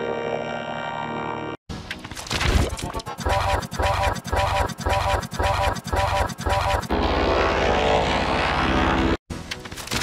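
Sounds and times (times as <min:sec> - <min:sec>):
distorted buzzing drone: 0:00.0 - 0:01.6, 0:02.9 - 0:09.2.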